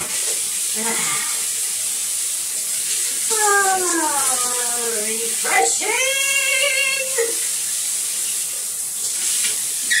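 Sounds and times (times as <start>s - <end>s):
shower water spraying: 0.0s - 10.0s.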